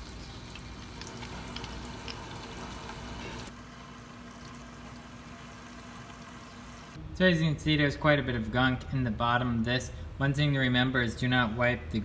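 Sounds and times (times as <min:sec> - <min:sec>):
faucet water splashing into sink: 0:00.0 - 0:06.6.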